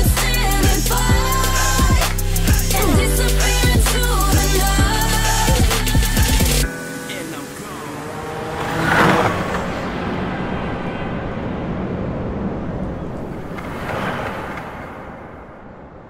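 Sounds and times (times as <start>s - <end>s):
city traffic rush: 5.6s - 16.0s.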